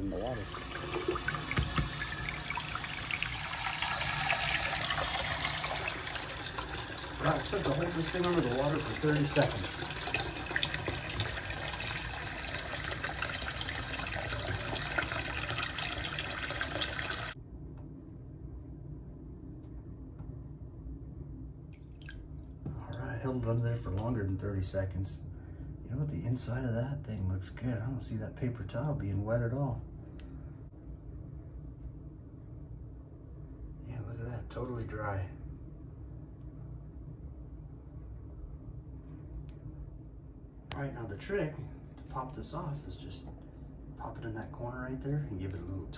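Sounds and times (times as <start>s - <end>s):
water dripping: 0.4s - 17.4s, 21.7s - 23.1s
tap water splashing in sink: 0.6s - 17.4s
low background rumble: 17.2s - 45.9s.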